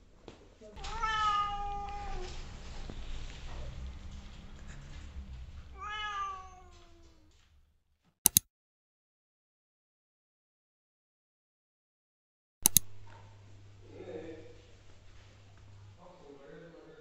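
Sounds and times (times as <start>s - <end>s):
cat meowing: 0.8s - 7.4s.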